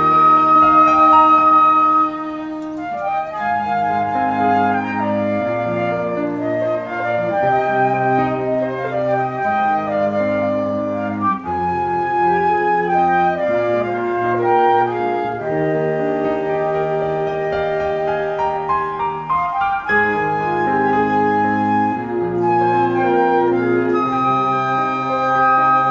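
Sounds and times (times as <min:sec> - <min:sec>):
cello bowed bass line: 0:00.0 - 0:25.9
flutes playing melody: 0:00.0 - 0:25.9.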